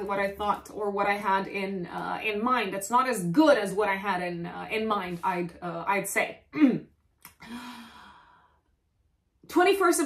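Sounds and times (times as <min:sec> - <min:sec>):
woman sighing: 0:07.4 - 0:08.4.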